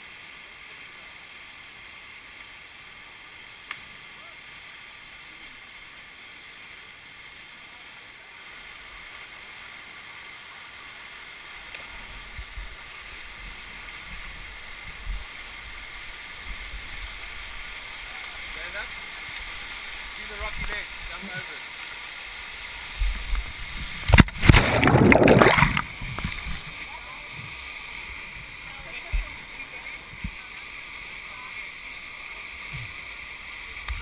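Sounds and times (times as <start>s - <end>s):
waterfall rushing: 15.4s - 34.0s.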